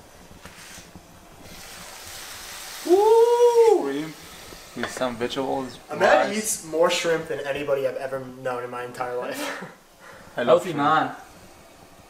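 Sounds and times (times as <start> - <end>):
food sizzling in a frying pan: 0.0 - 12.0
man shouting: 2.8 - 4.1.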